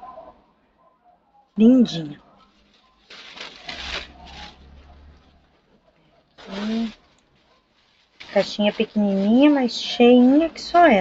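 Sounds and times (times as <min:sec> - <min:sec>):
tissue paper and cardboard rustling: 0:02.4 - 0:11.0.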